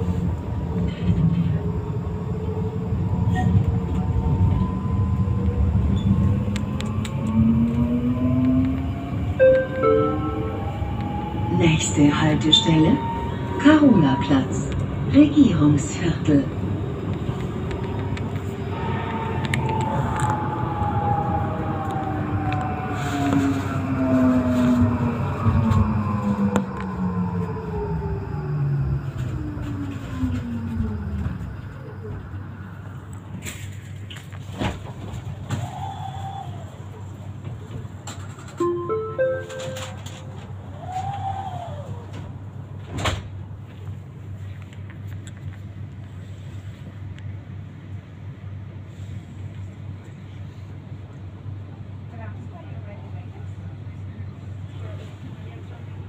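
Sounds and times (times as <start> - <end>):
tram electric drive whining: 0.0 - 46.0
low hum: 2.7 - 31.9
rising tones: 4.2 - 14.2.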